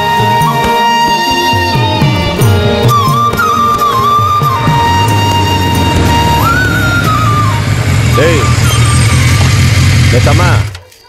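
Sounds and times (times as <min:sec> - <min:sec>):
background music: 0:00.0 - 0:10.3
motorcycle engine idling: 0:04.7 - 0:10.8.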